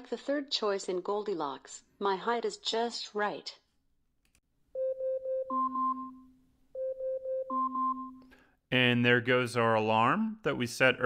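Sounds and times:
smart speaker timer alarm beeps: 0:04.8 - 0:08.4.

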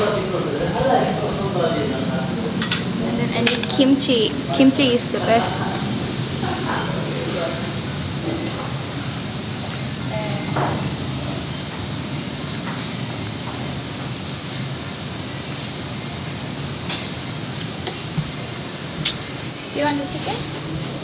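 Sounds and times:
restaurant room noise: 0:00.0 - 0:21.0.

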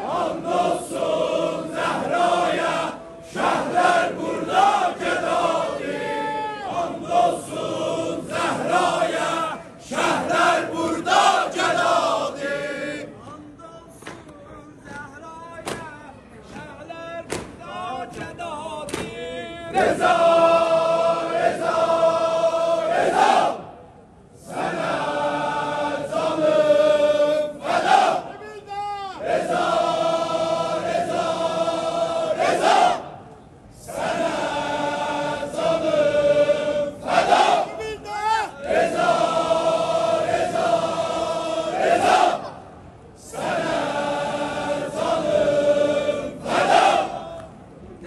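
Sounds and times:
crowd of men chanting: 0:00.0 - 0:13.3, 0:16.4 - 0:23.7, 0:24.4 - 0:28.4, 0:29.1 - 0:33.2, 0:33.8 - 0:47.5.

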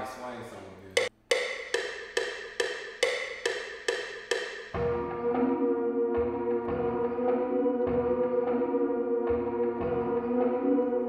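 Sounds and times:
wood block percussion loop: 0:00.9 - 0:05.3.

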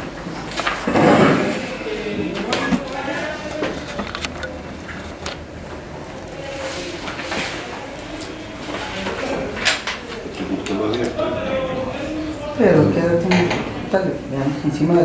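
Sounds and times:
background talk: 0:00.0 - 0:15.0
paper handling: 0:00.1 - 0:11.3.

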